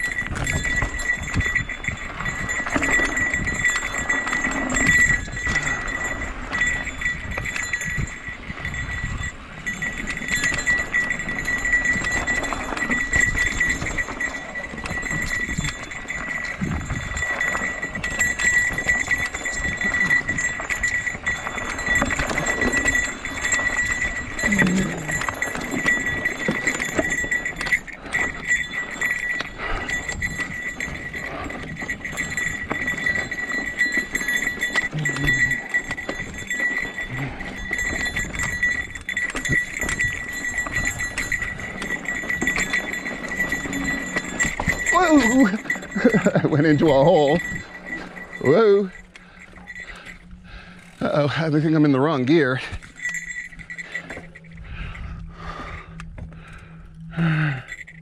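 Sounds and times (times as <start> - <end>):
bike rattling over stones: 0.0 - 58.0.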